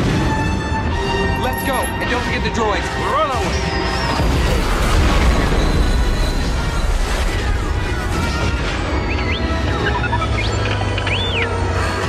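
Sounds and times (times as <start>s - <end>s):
orchestral music: 0.0s - 12.0s
explosion rumble: 4.2s - 9.0s.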